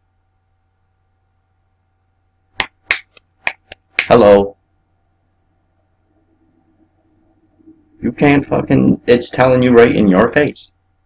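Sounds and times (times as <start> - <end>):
man clapping hands: 2.6 - 4.2.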